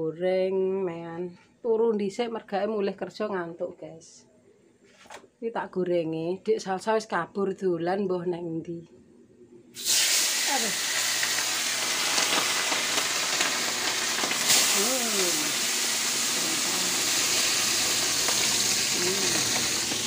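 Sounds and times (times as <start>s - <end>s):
fish sizzling in hot oil: 9.8s - 20.0s.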